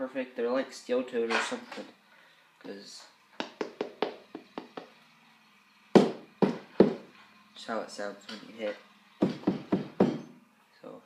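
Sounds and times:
knocks on hard shoe toe: 6.0 - 7.0, 9.2 - 10.3.

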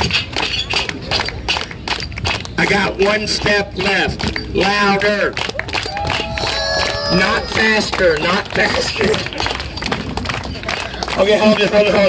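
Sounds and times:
audience hand-clapping: 0.0 - 12.0.

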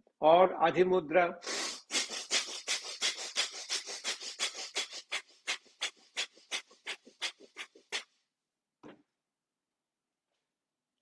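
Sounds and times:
rapid forceful nasal breathing: 1.4 - 8.2.

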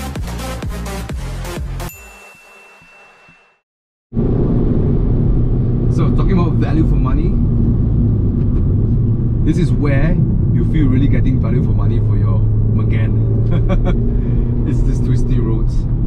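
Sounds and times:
car engine and road rumble: 4.1 - 16.0.

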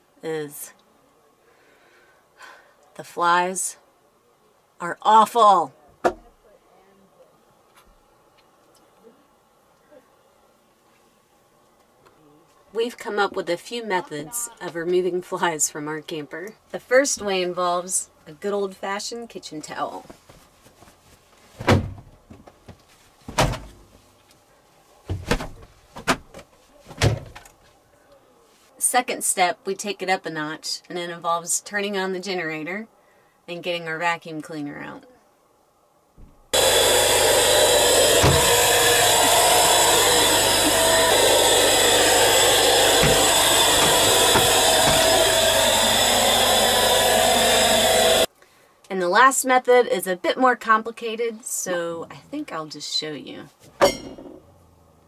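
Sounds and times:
vacuum cleaner running: 36.5 - 48.3.

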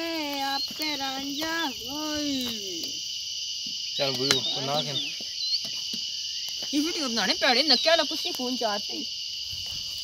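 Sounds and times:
insects shrilling: 0.0 - 10.0.

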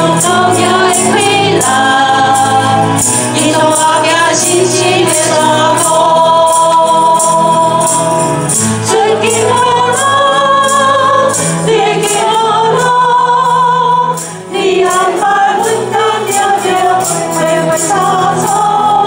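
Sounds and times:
congregation singing a hymn: 0.0 - 19.0
lead singer on a microphone: 0.0 - 19.0.

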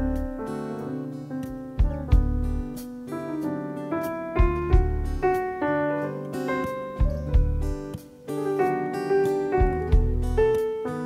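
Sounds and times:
keyboard and bass chords: 0.0 - 8.0, 9.5 - 10.8
acoustic guitar strumming: 0.0 - 11.0
sharp low thump: 1.8 - 2.6, 4.4 - 5.3.

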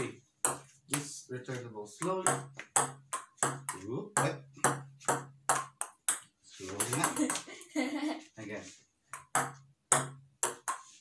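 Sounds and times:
ping-pong ball clicking: 4.6 - 7.4, 9.2 - 10.9
person speaking: 6.5 - 8.8.

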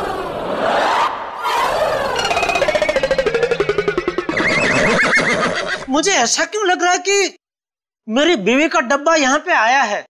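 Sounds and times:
horse whinny: 1.4 - 5.9.

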